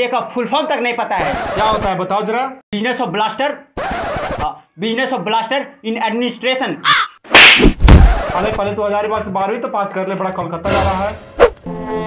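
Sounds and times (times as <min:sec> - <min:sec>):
high squawk-like cry: 0:06.8 - 0:07.2
sharp smack with low thud: 0:07.3 - 0:08.4.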